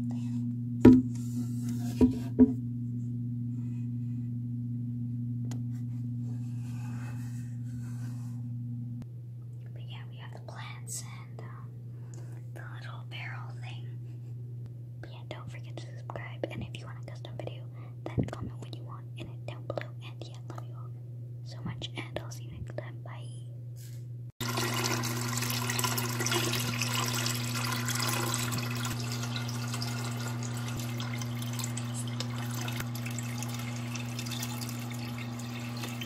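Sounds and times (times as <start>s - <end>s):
steady low hum: 0.0s - 36.0s
water running into aquarium: 24.4s - 36.0s.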